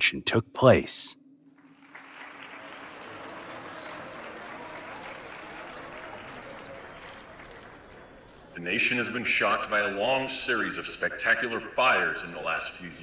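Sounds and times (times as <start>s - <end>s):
audience applauding: 1.6s - 9.0s.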